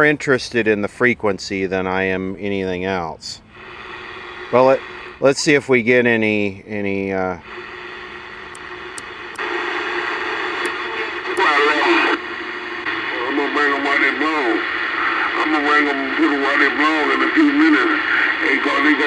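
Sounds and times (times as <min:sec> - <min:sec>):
mumbled radio voices: 0:03.0 - 0:19.0
radio static: 0:03.5 - 0:19.0.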